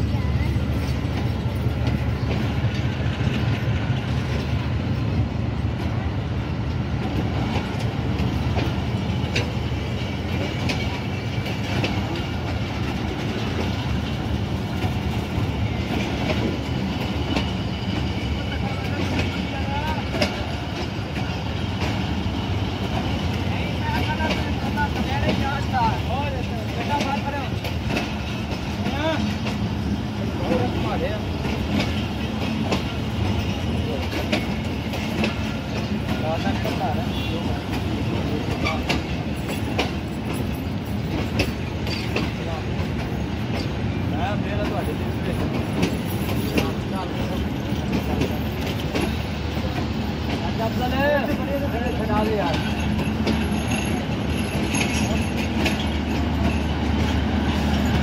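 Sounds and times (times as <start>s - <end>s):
train coaches rumbling past: 0.0s - 58.0s
wheels clacking over rail joints: 0.3s - 58.0s.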